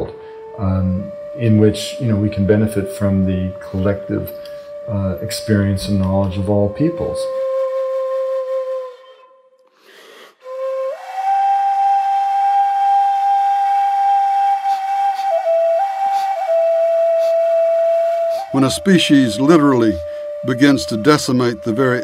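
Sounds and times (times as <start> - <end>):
wind instrument whistle-like notes: 0.0 - 22.0.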